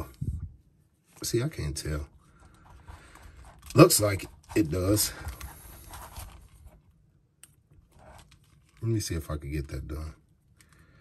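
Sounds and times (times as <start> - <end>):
hands handling plastic toy: 2.3 - 9.7.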